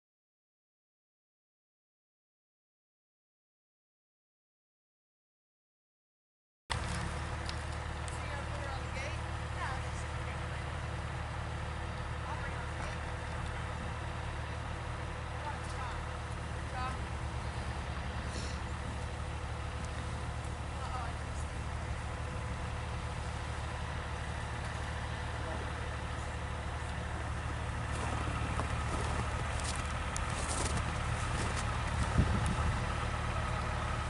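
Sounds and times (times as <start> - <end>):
vehicle engine idling: 6.7 - 34.0.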